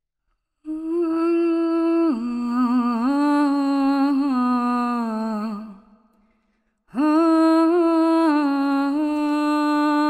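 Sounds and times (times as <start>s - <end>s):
woman humming a slow tune: 0.7s - 5.7s.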